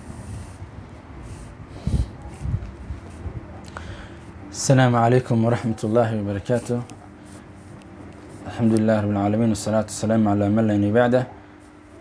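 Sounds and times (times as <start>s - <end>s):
man breathing: 1.6s - 2.2s, 3.7s - 4.3s.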